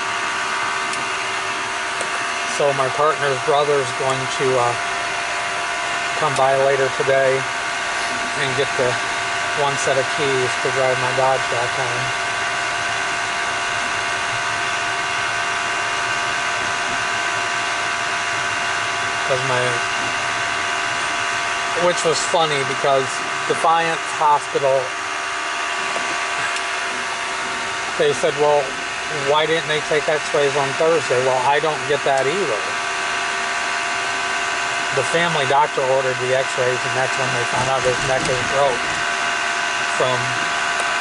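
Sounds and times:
car cabin hum and hiss: 0.0s - 41.0s
heater blower fan whirring: 0.0s - 41.0s
motor-like whine: 0.0s - 41.0s.

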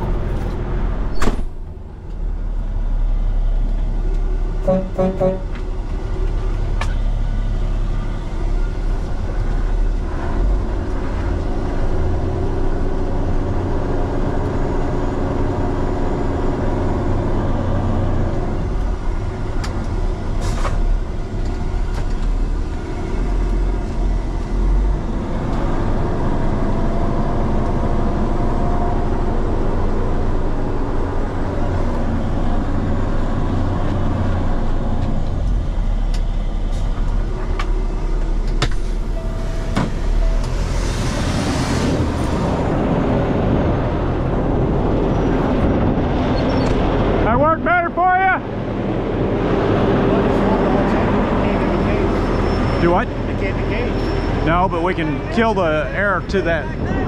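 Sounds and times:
diesel truck engine running: 0.0s - 57.0s
truck door shutting: 1.1s - 1.7s, 38.3s - 42.4s
brief beeping: 39.1s - 40.7s.

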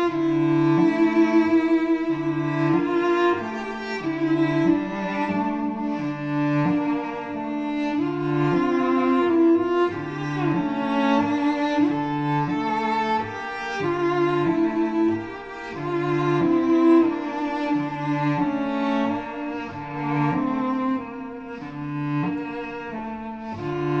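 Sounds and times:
cellos playing mournful duet: 0.0s - 24.0s.

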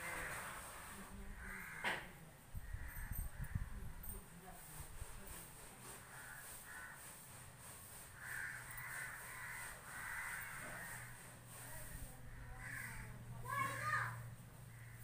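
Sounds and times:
crows cawing: 1.3s - 3.7s, 6.0s - 7.2s, 8.0s - 11.6s, 12.3s - 15.0s.

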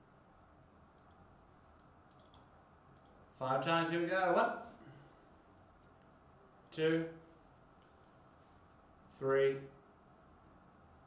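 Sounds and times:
faint computer clicks: 0.9s - 3.2s.

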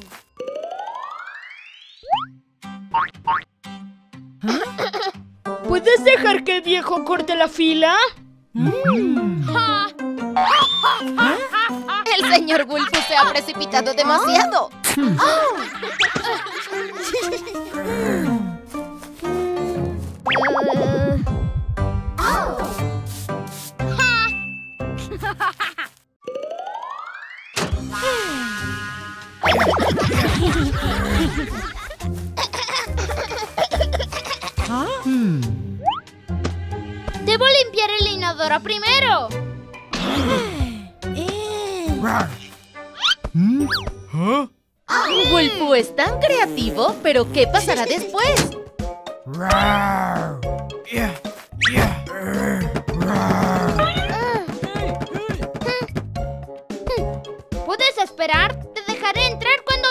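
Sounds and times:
children's music: 4.4s - 25.4s, 29.4s - 43.2s, 43.8s - 51.8s, 53.8s - 59.9s.

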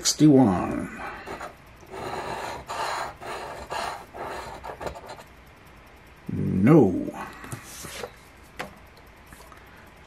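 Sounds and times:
coin scraping lottery ticket: 1.3s - 5.2s.

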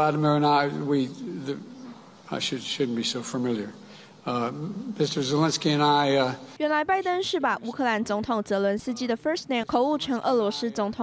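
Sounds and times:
man speaking into a microphone: 0.0s - 6.6s.

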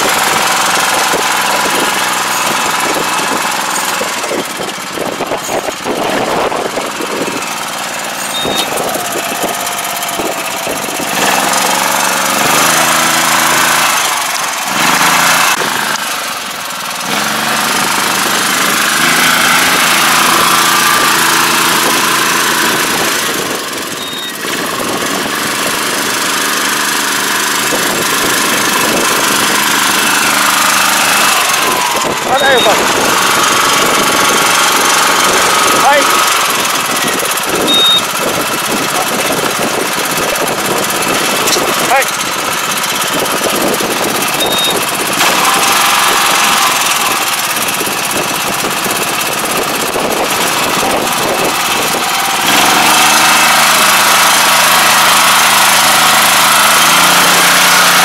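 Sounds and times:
rice transplanter clattering: 0.0s - 58.0s.

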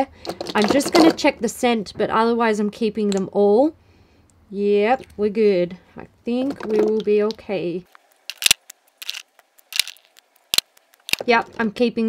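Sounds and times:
plastic lipstick tubes clicking: 8.3s - 11.4s.

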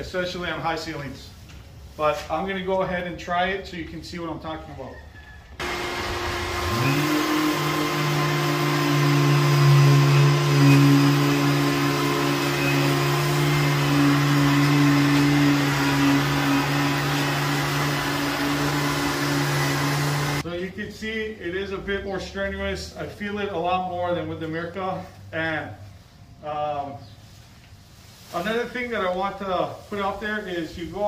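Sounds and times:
drywall sander motor hum: 5.6s - 20.4s
shop vacuum suction rushing: 5.6s - 20.4s.

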